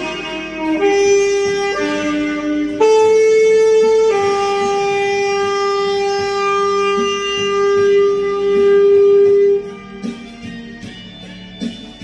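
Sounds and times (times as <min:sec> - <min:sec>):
saxophone holding long note: 0:00.0 - 0:10.3.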